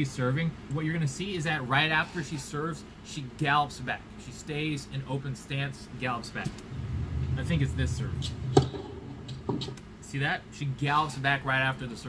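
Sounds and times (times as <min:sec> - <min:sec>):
tennis racquet hitting ball: 0:08.4 - 0:09.8.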